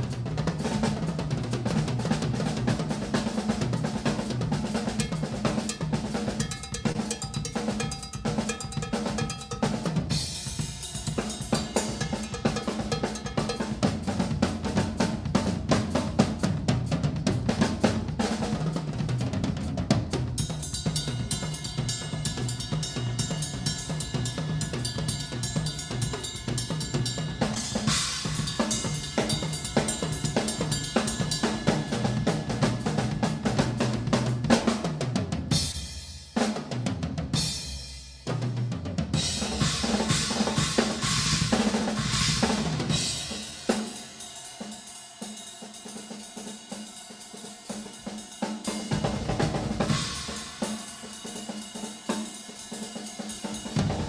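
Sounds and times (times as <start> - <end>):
cymbals ringing and crashing: 0.0 - 2.0, 3.4 - 36.5, 39.2 - 54.0
bass drum and snare strokes: 0.0 - 44.2.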